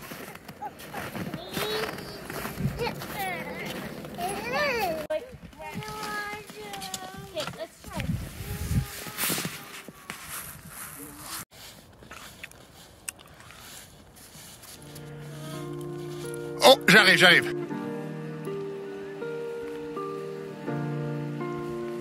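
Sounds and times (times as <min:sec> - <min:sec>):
child calling out: 0:00.7 - 0:05.1, 0:15.2 - 0:15.8
wind rumble on microphone: 0:02.4 - 0:03.2, 0:07.2 - 0:09.6
background music with sustained chords: 0:14.8 - 0:22.0.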